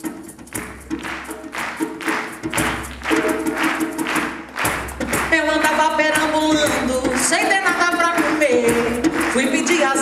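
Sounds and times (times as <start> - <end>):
hand drum beat: 0.0 - 10.0.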